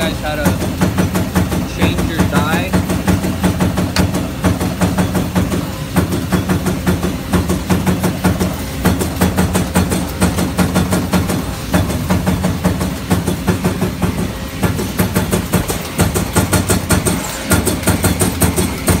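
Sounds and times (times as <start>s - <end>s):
machinery humming: 0.0s - 19.0s.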